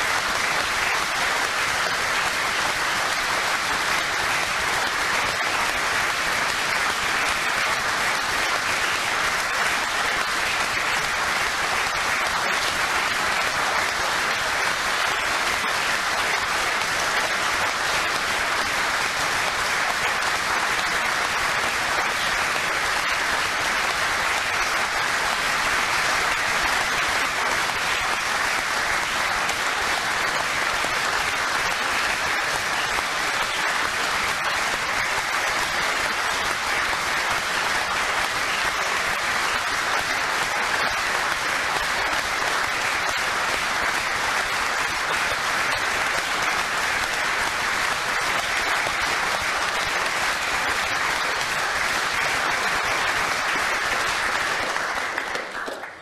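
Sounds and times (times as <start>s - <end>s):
sustained applause: 0.0s - 56.0s.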